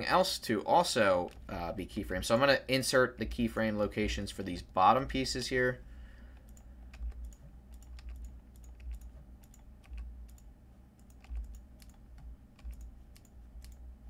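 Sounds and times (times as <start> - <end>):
low steady hum: 0.0 - 14.0
keyboard and mouse clicking: 6.4 - 13.9.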